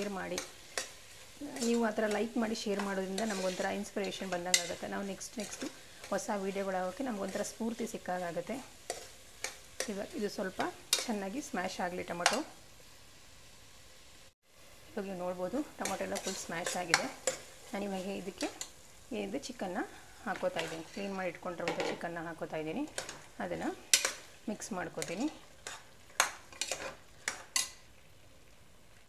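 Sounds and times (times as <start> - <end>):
faint sizzling of frying food: 0.0 - 29.0
ladle scraping metal pot: 2.7 - 6.3, 15.8 - 17.5, 20.3 - 22.0, 25.0 - 27.8.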